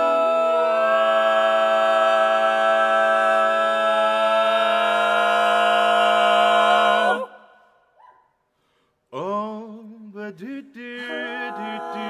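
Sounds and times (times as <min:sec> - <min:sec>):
male voices singing close harmony: 0:09.2 - 0:12.0.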